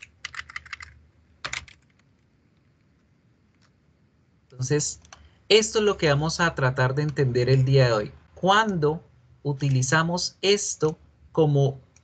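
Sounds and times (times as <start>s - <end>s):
keyboard typing: 0.0s - 2.0s, 5.0s - 5.3s
faint room noise: 0.0s - 12.0s.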